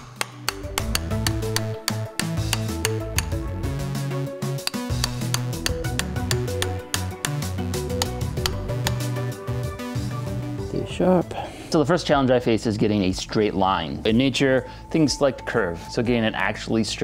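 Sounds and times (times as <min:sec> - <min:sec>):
background music with steady beat: 0:00.0 - 0:17.0
metal chisel clinking on blade: 0:04.6 - 0:07.4.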